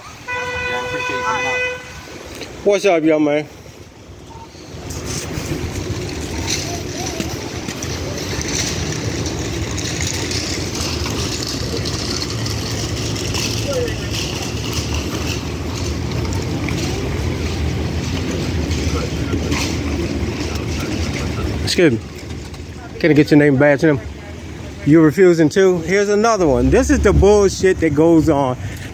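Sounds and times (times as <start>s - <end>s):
car engine idling: 0.0s - 28.9s.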